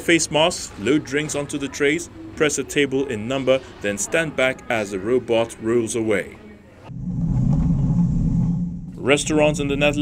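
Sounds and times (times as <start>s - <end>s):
robot wheels rumbling: 6.9s - 10.0s.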